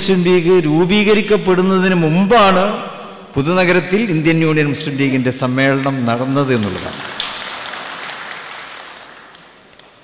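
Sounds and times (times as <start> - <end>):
audience applause: 6.1 - 10.0.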